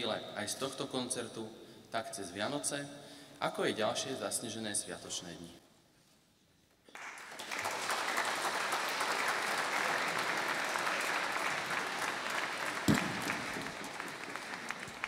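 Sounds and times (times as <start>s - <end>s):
audience applauding: 6.9s - 15.0s
single thump: 12.9s - 13.3s.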